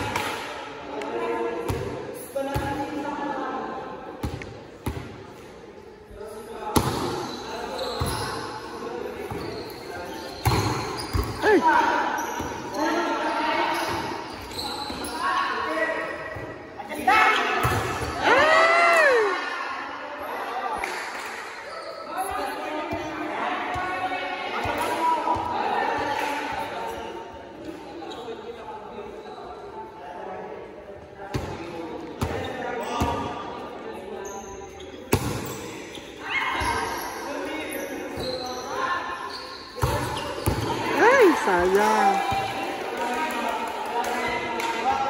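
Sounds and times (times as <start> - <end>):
players calling out: 40.9 - 42.3.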